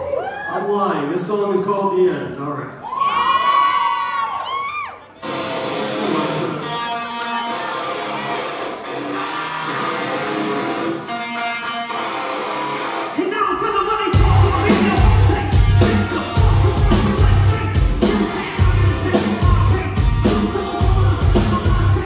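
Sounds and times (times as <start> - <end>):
person singing: 5.2 - 8.8, 13.2 - 22.0
electric guitar strumming: 5.2 - 22.0
person yelling: 7.3 - 8.7.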